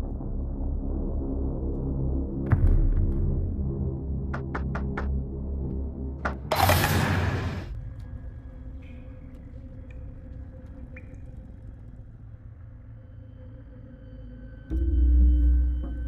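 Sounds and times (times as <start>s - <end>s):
low steady drone: 6.6s - 16.0s.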